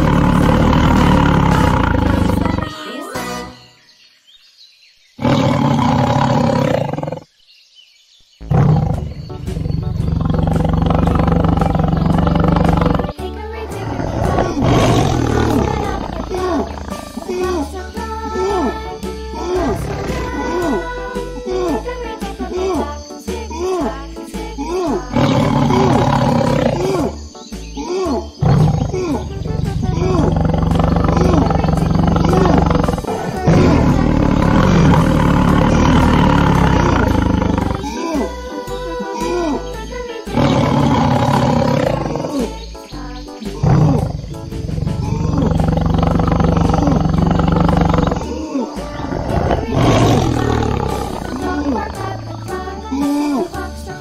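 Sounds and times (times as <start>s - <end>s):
cartoon big cat roaring: 0.0s - 2.9s, 5.2s - 7.3s, 8.4s - 21.9s, 24.7s - 27.2s, 27.8s - 39.7s, 40.3s - 42.6s, 43.6s - 52.3s
bouncy children's music: 0.0s - 3.9s, 8.9s - 54.0s.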